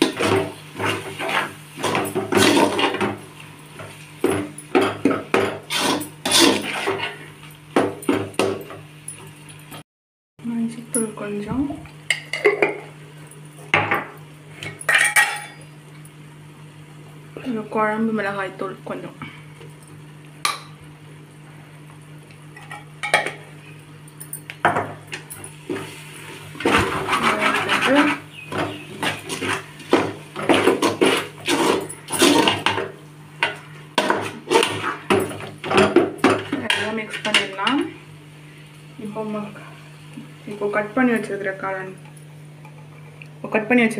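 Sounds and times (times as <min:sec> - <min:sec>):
metal spatula scraping a pot: 0:00.1 - 0:03.0, 0:05.3 - 0:07.3, 0:26.6 - 0:28.3, 0:29.0 - 0:32.8, 0:34.0 - 0:35.1.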